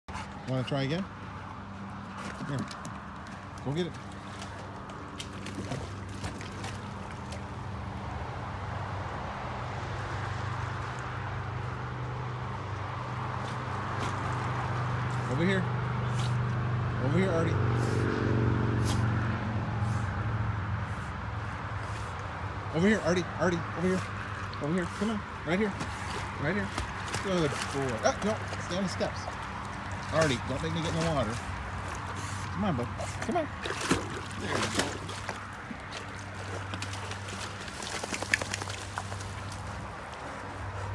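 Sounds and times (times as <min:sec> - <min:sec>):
dog paddling in pool water: 0:00.1 - 0:08.0, 0:24.0 - 0:40.9.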